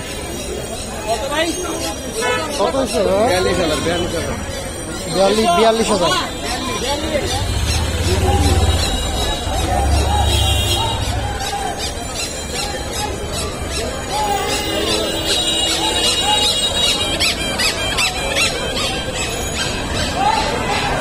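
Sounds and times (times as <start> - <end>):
crowd talking: 0.0 - 21.0.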